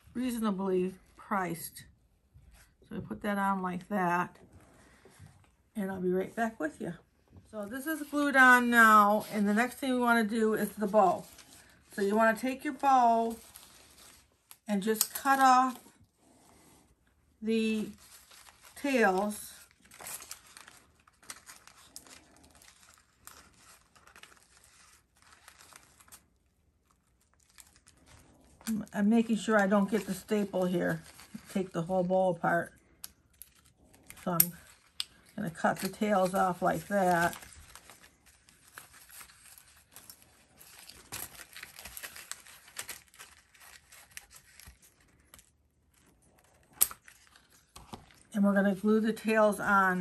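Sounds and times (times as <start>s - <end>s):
ribbon crinkling and rustling: 4.3s - 50.0s.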